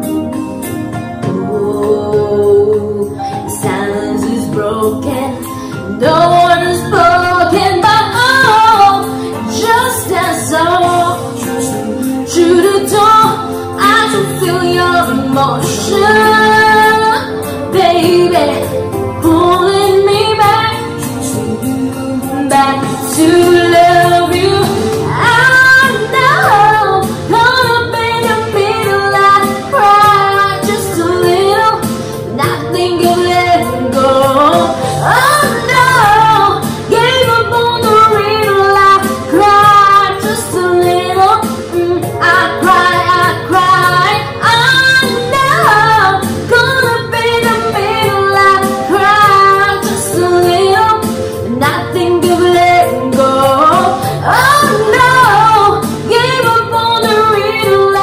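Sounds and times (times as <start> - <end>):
karaoke instrumental backing track: 0.0 - 58.0
woman singing: 1.0 - 58.0.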